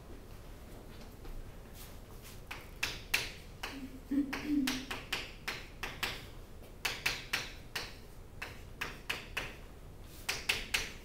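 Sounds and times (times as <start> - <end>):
chalk tapping and scratching: 4.7 - 11.0.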